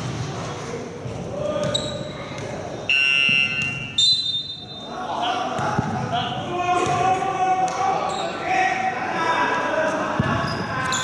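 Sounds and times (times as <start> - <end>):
players' voices: 0.4 - 11.0
referee's whistle blast: 2.9 - 4.9.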